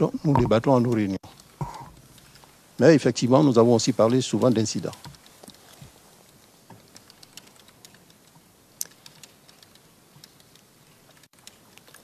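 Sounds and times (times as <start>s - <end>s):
typing on computer keyboard: 6.8s - 12.0s.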